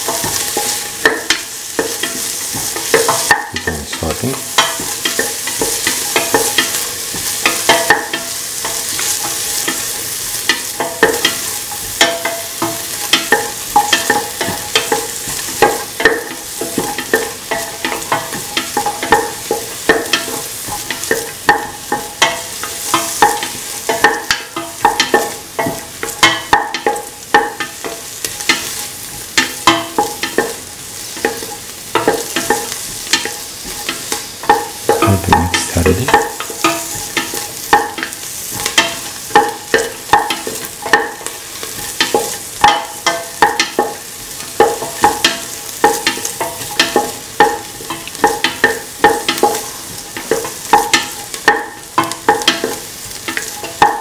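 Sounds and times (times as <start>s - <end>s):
onion sizzling in oil: 0.0s - 54.0s.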